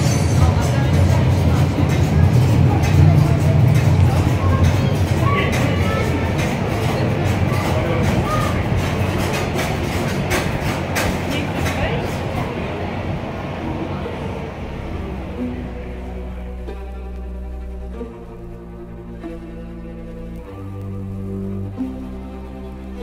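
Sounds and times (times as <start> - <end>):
rattling and clattering: 0.0 - 12.4
deep rumble: 0.0 - 23.0.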